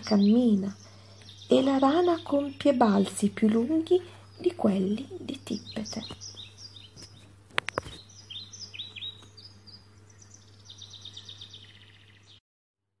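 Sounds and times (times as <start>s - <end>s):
small birds chirping: 0.0s - 12.4s
steady low hum: 0.0s - 12.4s.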